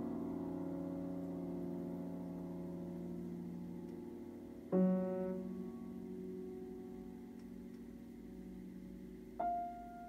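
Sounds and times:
piano chord ringing: 0:00.0 - 0:10.0.

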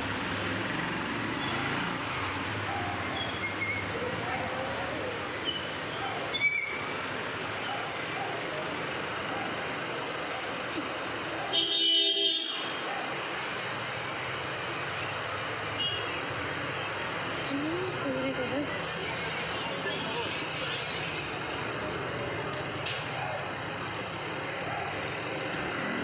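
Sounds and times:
street traffic noise: 0:00.0 - 0:26.0
vehicle horn honking: 0:11.6 - 0:12.8.

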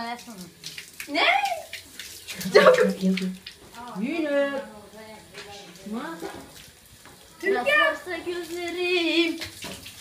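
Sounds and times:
hose water splashing: 0:00.0 - 0:10.0.

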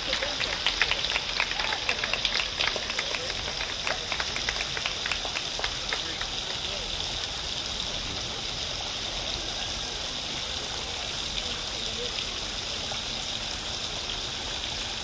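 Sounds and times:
faint voices talking: 0:00.0 - 0:13.8
running water rushing: 0:00.0 - 0:15.0.

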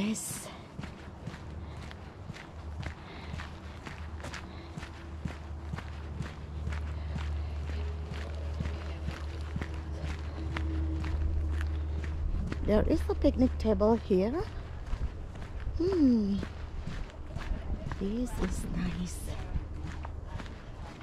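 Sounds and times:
footsteps crunching on gravel: 0:00.0 - 0:21.0
low steady rumble: 0:00.0 - 0:21.0.

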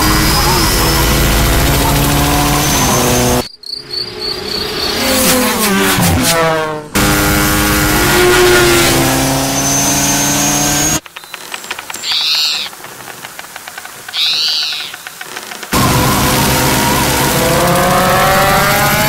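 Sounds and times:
buzzing motor-like drone: 0:00.0 - 0:03.5, 0:04.6 - 0:11.0, 0:15.7 - 0:19.0
short squeaky calls: 0:09.6 - 0:15.8.

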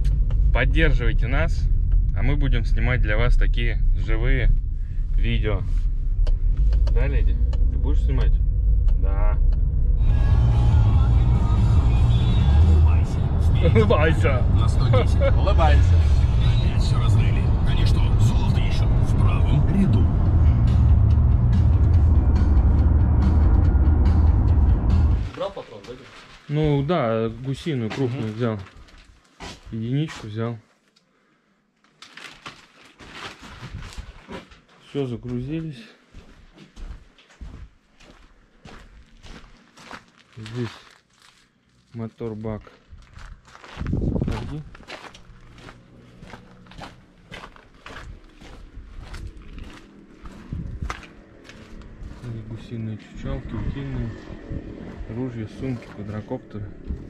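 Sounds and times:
car road and engine rumble: 0:00.0 - 0:25.5, 0:41.0 - 0:57.0
footsteps on grass: 0:25.3 - 0:28.1, 0:36.1 - 0:52.4.

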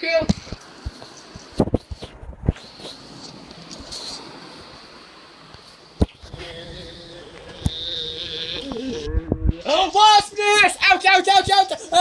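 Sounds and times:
high-pitched voice wailing: 0:06.4 - 0:10.6.

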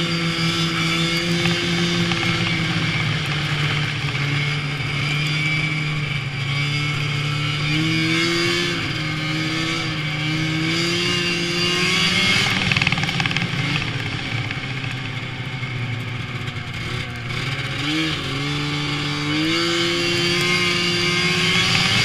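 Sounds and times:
snowmobile engine running: 0:00.0 - 0:22.0.

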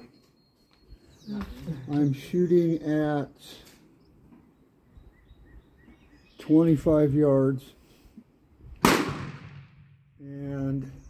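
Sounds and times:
gunshot: 0:08.8 - 0:10.0.

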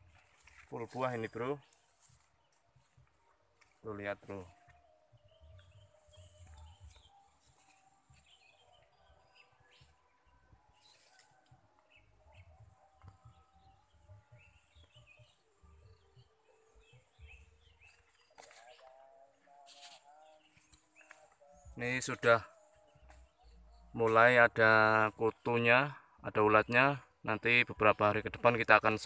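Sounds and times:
distant bird chirps: 0:00.0 - 0:29.0.

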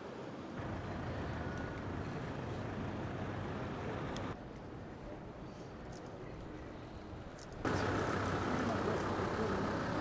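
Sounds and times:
street noise: 0:00.0 - 0:10.0
vehicle engine running: 0:07.7 - 0:10.0.

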